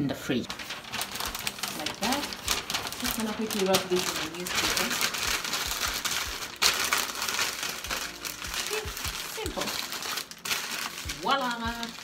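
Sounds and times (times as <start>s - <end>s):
newspaper rustling and crinkling: 0.2s - 12.0s.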